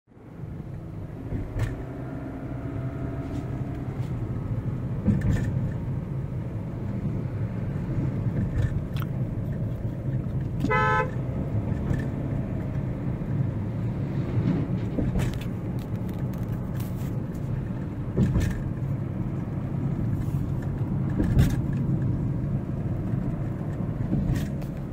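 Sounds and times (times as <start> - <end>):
road and engine rumble: 0.1 - 24.9
vehicle horn honk: 10.6 - 11.2.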